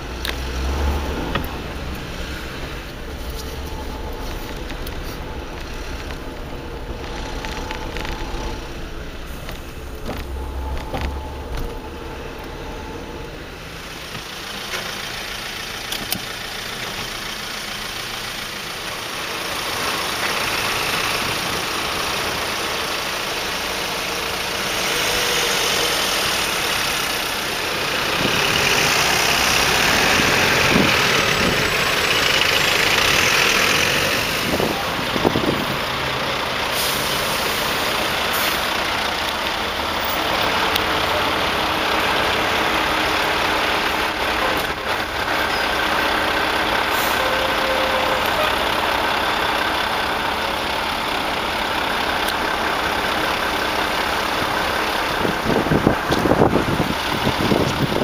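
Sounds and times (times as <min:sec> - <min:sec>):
diesel lorry engine: 0:00.0 - 0:58.0
road traffic: 0:00.0 - 0:58.0.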